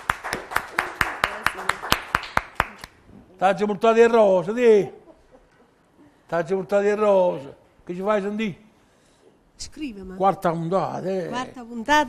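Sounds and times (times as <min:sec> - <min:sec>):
hands clapping in rhythm: 0:00.0 - 0:03.0.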